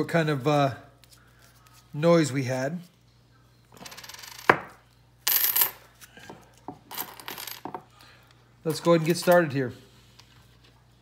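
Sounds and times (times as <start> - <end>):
coins clinking on wooden table: 3.8 - 5.8, 6.7 - 7.8.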